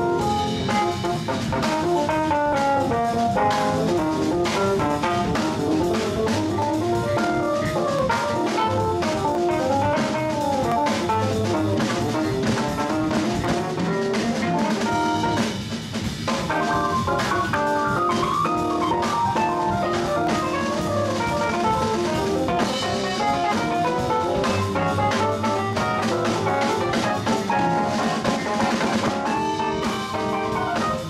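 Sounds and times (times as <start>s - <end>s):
jazz band playing: 0.0s - 31.0s.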